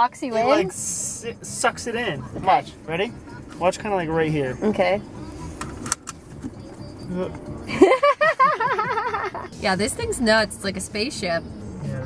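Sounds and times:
seatbelt buckle click: 5.6 - 6.5
person laughing: 7.7 - 9.5.

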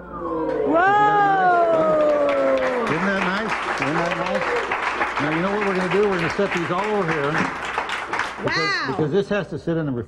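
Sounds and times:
man talking: 2.9 - 7.5, 8.4 - 10.0.

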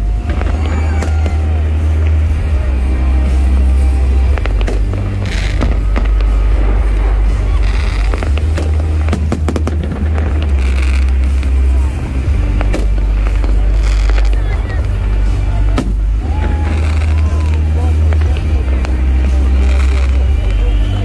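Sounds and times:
fireworks bangs and crackles: 0.0 - 21.0
heavy low rumble: 0.0 - 21.0.

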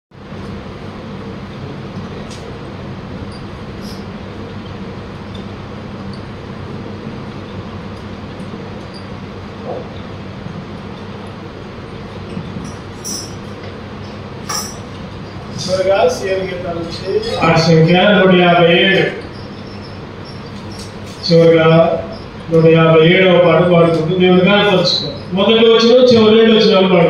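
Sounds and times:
ceiling fan humming: 0.1 - 27.0.

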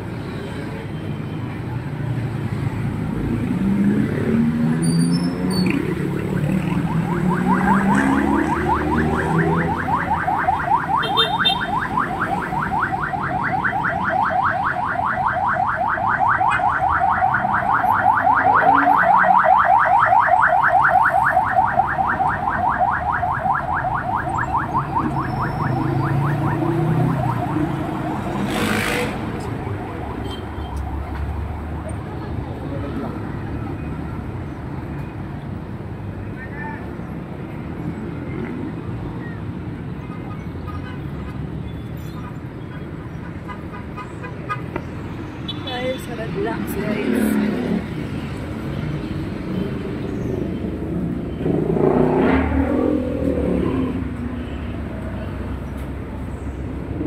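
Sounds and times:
street traffic: 0.0 - 57.0.

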